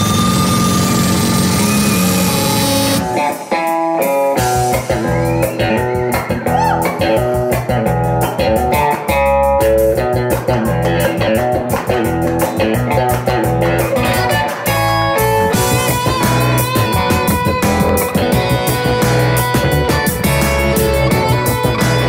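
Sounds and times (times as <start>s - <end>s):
electronic music with electric guitar: 0.0s - 22.0s
steady bass beat: 4.4s - 22.0s.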